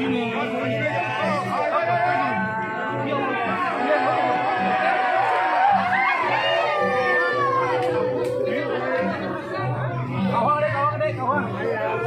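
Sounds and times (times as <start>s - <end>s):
crowd of men shouting: 0.8s - 9.4s.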